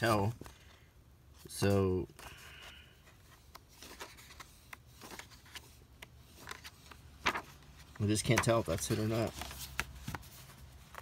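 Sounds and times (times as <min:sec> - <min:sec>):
booklet pages turning: 0:00.0 - 0:11.0.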